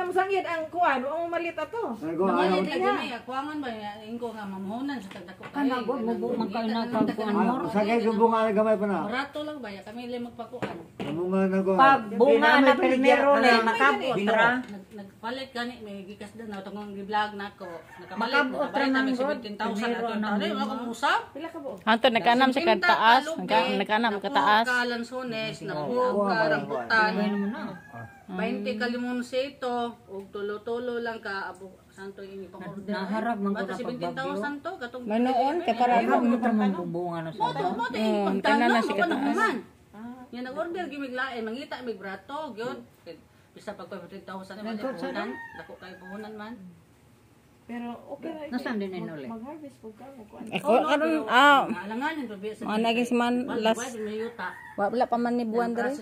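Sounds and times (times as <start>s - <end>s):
people talking: 11.9s - 42.9s, 47.7s - 56.0s
rooster crowing: 17.6s - 19.4s, 26.4s - 28.7s, 44.6s - 46.6s, 53.7s - 55.5s.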